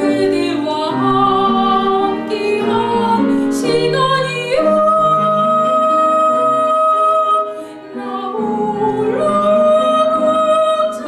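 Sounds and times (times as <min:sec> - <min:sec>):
grand piano accompaniment: 0:00.0 - 0:11.0
soprano singing: 0:00.0 - 0:11.0.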